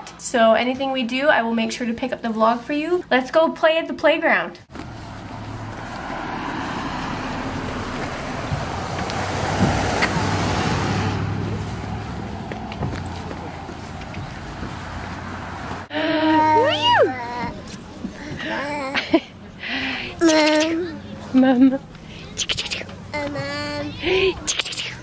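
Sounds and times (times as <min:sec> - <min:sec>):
vehicle passing: 0:04.7 - 0:25.0.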